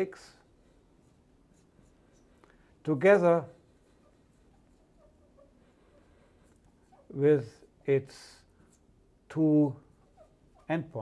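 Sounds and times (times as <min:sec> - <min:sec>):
man talking: 0:00.0 - 0:00.4, 0:02.8 - 0:03.6, 0:07.1 - 0:08.5, 0:09.3 - 0:09.8, 0:10.7 - 0:11.0.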